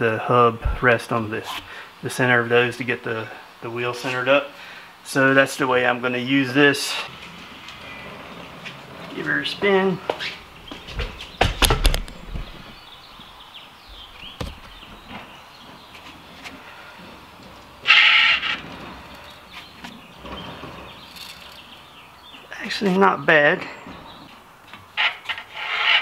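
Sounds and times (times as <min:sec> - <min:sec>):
bicycle wheel spinning: 0:20.2 - 0:21.8.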